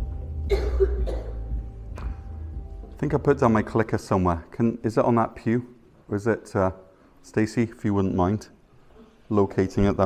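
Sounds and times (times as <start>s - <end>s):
soft background music: 0.0s - 6.7s
person coughing: 0.5s - 1.5s.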